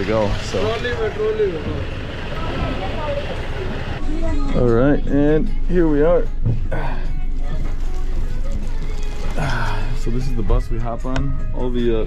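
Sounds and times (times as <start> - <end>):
bus engine idling: 0.0 - 4.5
people talking: 0.0 - 6.0.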